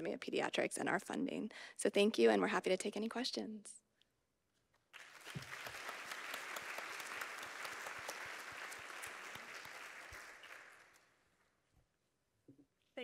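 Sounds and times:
audience applauding: 4.9 - 11.2.

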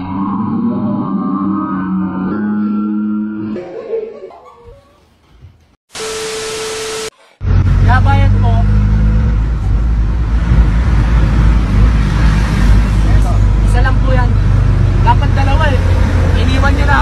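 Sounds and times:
vehicle engine drone and road rumble: 7.4 - 17.0.

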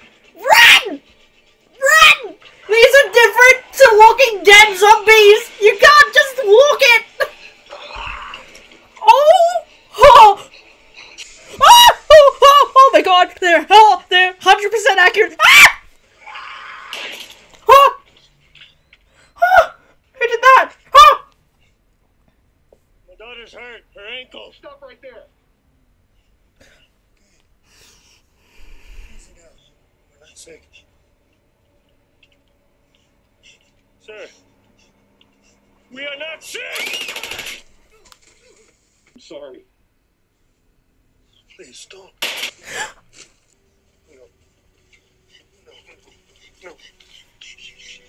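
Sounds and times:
woman screaming: 0.4 - 1.0, 1.8 - 7.0, 9.0 - 10.4, 11.5 - 13.2, 15.2 - 17.0, 17.6 - 18.0, 19.4 - 21.3
automatic gunfire: 36.7 - 37.7.

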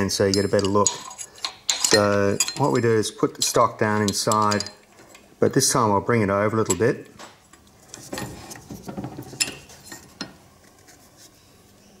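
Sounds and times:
metal bar scraping and clinking: 0.2 - 5.3, 7.5 - 10.4.

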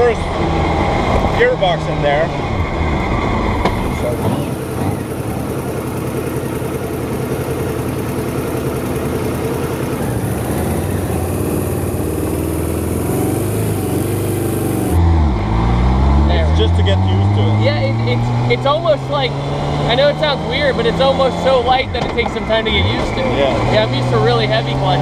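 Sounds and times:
engine revving up close: 0.0 - 5.9, 10.0 - 25.0
motorcycle engine driving: 0.0 - 25.0
road and wind noise: 0.0 - 25.0.

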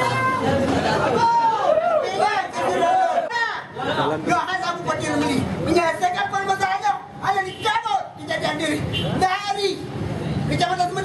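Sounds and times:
crowd chatter: 0.0 - 11.0
man speaking through megaphone: 2.0 - 9.9.

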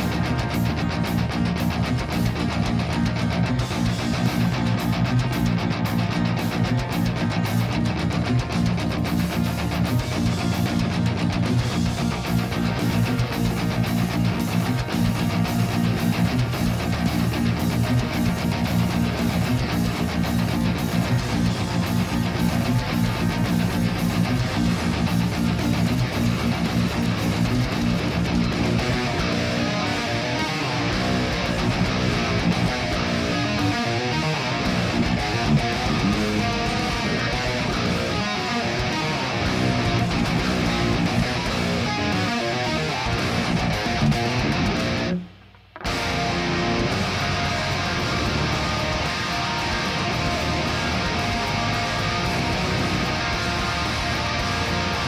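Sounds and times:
distorted electric guitar riffs: 0.0 - 55.0.

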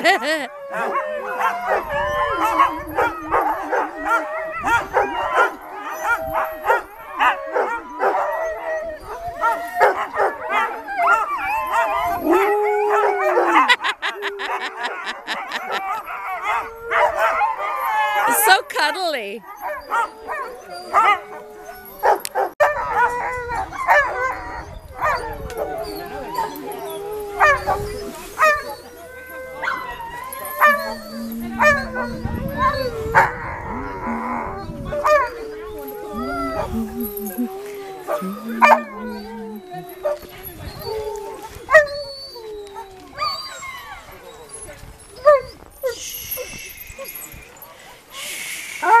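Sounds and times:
dogs howling: 0.0 - 18.6, 19.4 - 48.1
dogs barking and yipping: 0.0 - 49.0.

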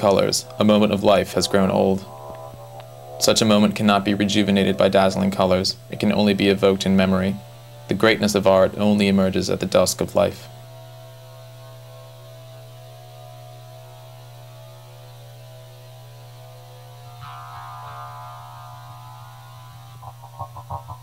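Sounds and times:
faint held tone: 0.0 - 7.9, 17.2 - 21.0
higher buzzing tone: 0.0 - 21.0
low electrical hum: 0.0 - 21.0.

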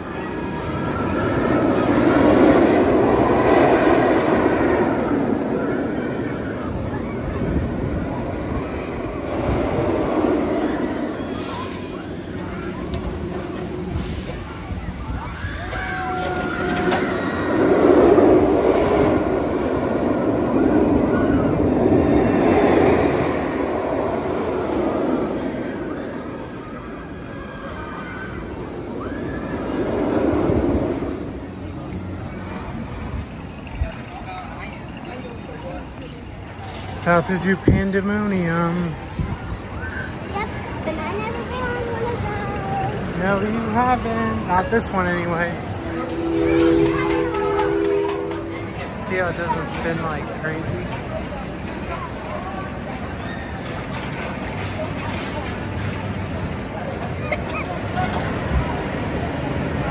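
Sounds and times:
roller coaster train rumbling on track: 0.0 - 59.9.

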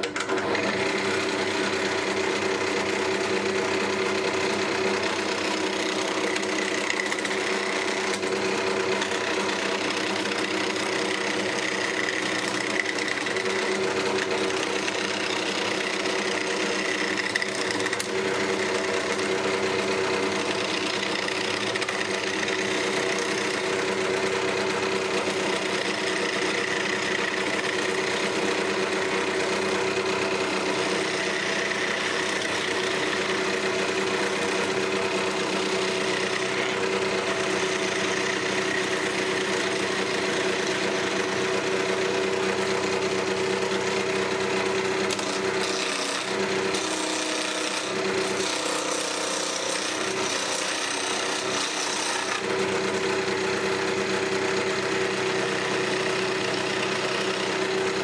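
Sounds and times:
chisel cutting spinning wood: 0.0 - 58.0
wood lathe motor humming: 0.0 - 58.0.

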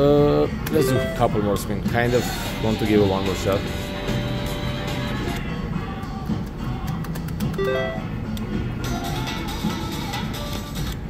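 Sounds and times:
background music: 0.0 - 11.0
slot machine reels spinning: 7.6 - 8.0
rising electronic beeps: 7.6 - 8.1.

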